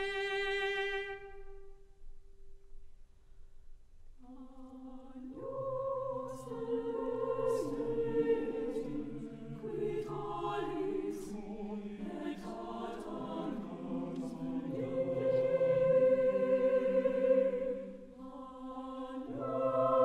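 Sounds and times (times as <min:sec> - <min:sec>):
choir singing sustained chords: 0:00.0 - 0:02.6, 0:04.2 - 0:20.0.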